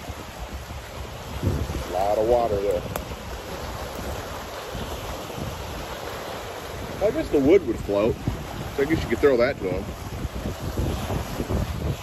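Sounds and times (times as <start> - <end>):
waves washing against rocky shore: 0.0 - 12.0
wind buffeting microphone: 0.0 - 12.0.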